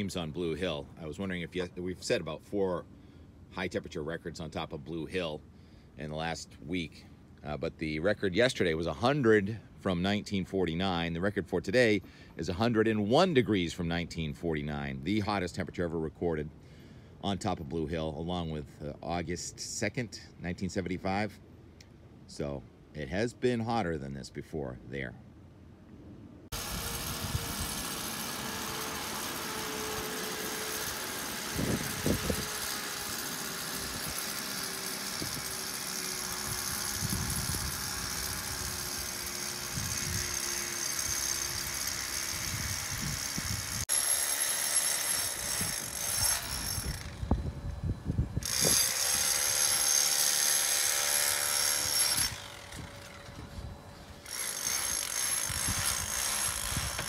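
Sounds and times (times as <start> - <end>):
handheld power tool running: 26.5 - 47.8, 48.4 - 53.6, 54.2 - 57.0.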